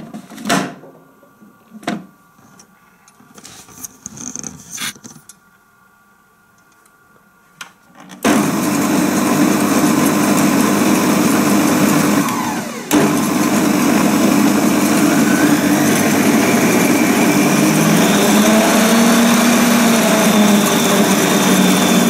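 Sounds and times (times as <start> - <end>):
food processor motor humming: 8.3 - 22.0.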